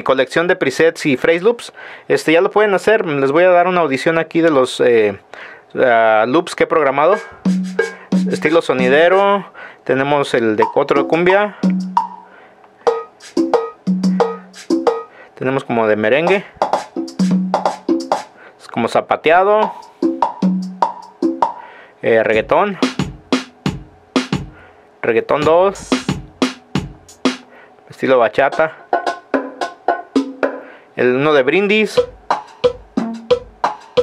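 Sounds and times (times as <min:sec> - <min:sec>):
electronic percussion loop: 0:07.0 - 0:09.4, 0:10.6 - 0:15.1, 0:16.2 - 0:18.3, 0:19.6 - 0:21.6, 0:22.4 - 0:24.6, 0:25.4 - 0:27.5, 0:28.5 - 0:30.6, 0:31.9 - 0:34.0.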